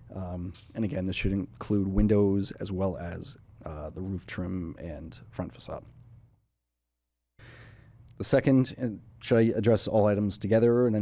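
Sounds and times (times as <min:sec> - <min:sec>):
faint room hum: 0:00.0 - 0:06.4, 0:07.4 - 0:11.0
man breathing softly: 0:07.4 - 0:08.1.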